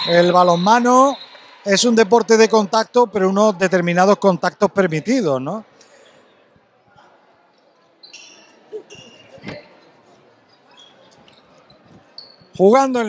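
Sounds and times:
faint squeaks: 0:07.0 - 0:12.7.

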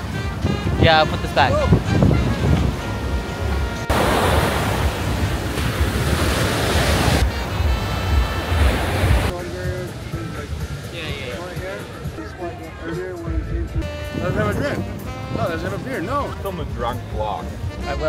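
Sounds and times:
background music with steady tones: 0:00.0 - 0:18.0
surf breaking on beach: 0:03.9 - 0:12.1
voices: 0:07.2 - 0:18.0.

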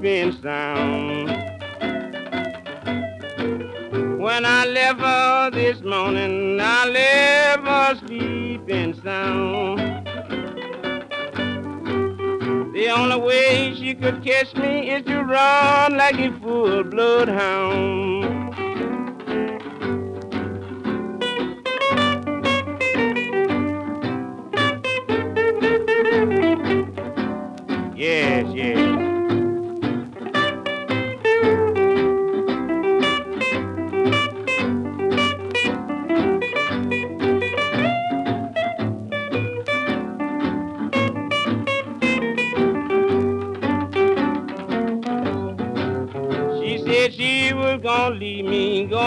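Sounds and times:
blues harmonica: 0:00.0 - 0:49.0
plucked acoustic guitar: 0:00.0 - 0:49.0.

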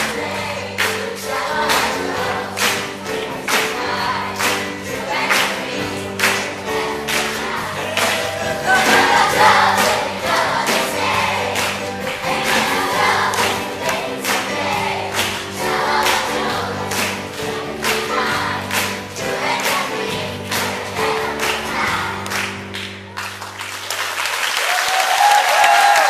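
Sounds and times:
children's choir singing: 0:00.0 - 0:22.8
musical accompaniment with steady beat: 0:00.0 - 0:23.2.

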